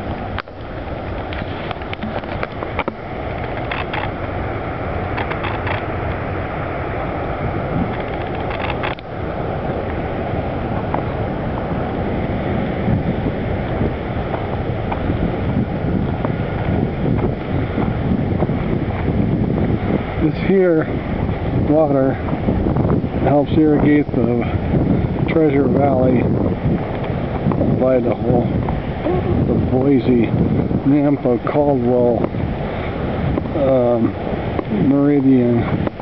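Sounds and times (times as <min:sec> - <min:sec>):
river rapids rushing: 0:00.0 - 0:16.6
wind buffeting microphone: 0:00.0 - 0:36.0.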